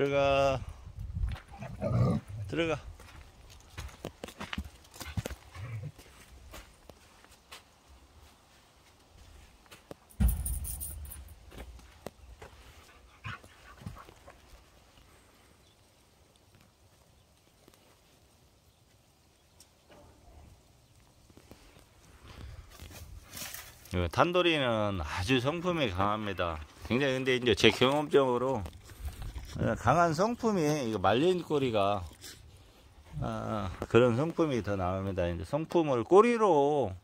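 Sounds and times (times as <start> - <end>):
knocks and scuffs on dirt: 1.1 - 14.8, 21.2 - 24.0, 25.5 - 30.1
leaves rustling: 1.9 - 35.1
dog paws on dry leaves: 2.9 - 15.3, 25.4 - 34.7.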